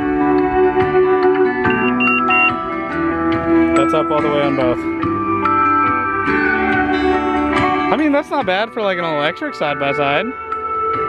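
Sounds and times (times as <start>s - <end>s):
guitar music from speakers: 0.0s - 11.0s.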